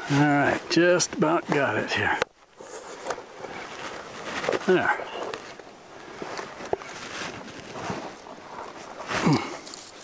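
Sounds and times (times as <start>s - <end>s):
bark peeling with crackles: 2.6s - 10.0s.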